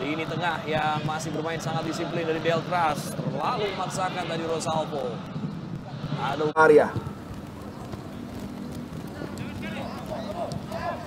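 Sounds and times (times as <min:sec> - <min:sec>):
crowd and field noise: 0:00.0 - 0:11.0
faint distant voices calling: 0:00.0 - 0:11.0.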